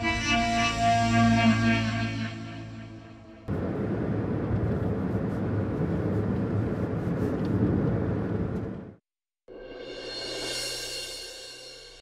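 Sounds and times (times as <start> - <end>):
car engine and tyre noise: 3.4 - 9.0.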